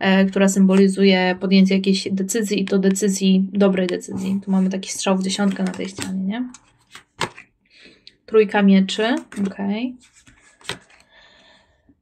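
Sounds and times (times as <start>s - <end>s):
faint rubbing of card: 9.3s - 11.2s.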